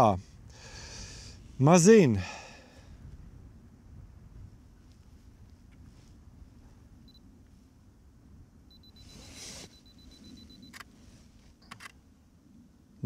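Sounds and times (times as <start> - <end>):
rapid self-timer beeping: 8.7 - 10.8
camera beep: 8.7 - 10.9, 11.6 - 12.0.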